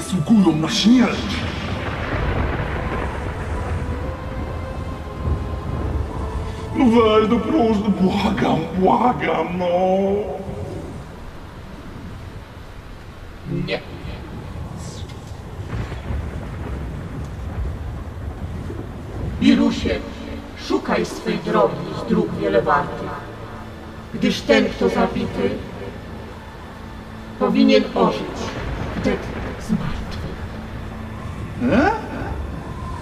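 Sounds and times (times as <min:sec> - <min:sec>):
rain hissing: 0:00.0 - 0:33.0
thunder rumbling: 0:00.0 - 0:33.0.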